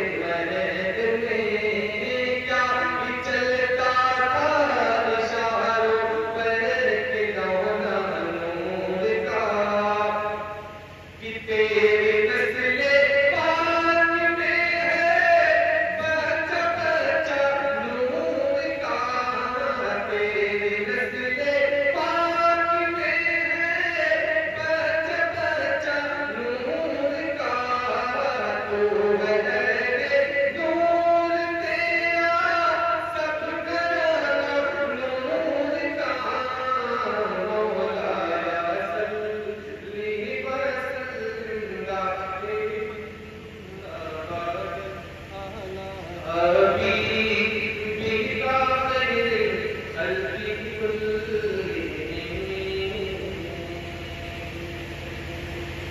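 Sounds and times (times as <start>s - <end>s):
man chanting into microphone: 0.0s - 54.8s
man singing devotional song: 0.0s - 54.8s.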